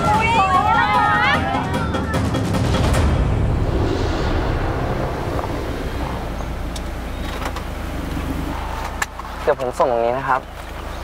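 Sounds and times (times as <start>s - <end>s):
car engine and tyre rumble: 2.7s - 11.0s.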